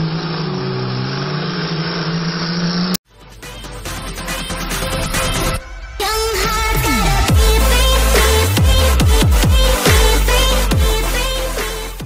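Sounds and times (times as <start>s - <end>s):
race car engines revving: 0.0s - 3.0s
electronic music: 3.1s - 12.0s.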